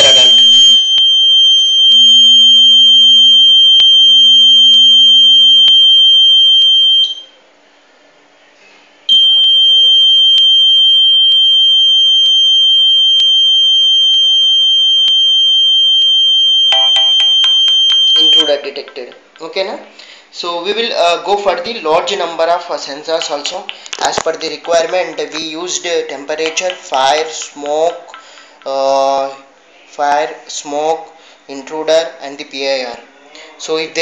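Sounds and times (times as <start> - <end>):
high-pitched alarm buzzer: 0.0 - 7.2, 9.1 - 18.6.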